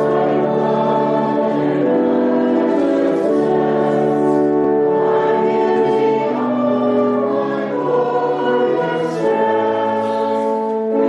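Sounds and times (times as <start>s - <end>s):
church organ chords: 0.0s - 11.0s
congregation singing a hymn: 0.0s - 11.0s.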